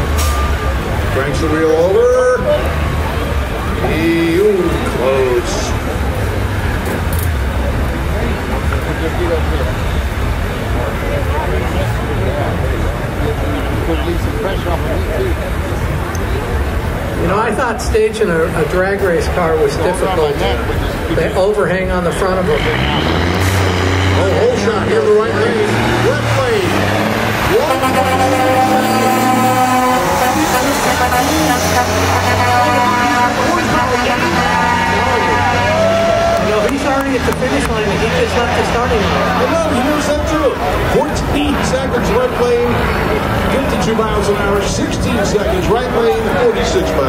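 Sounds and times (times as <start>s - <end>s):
diesel truck engine accelerating: 0.0s - 47.0s
distant crowd chatter: 0.0s - 47.0s
race vehicles idling: 0.0s - 47.0s.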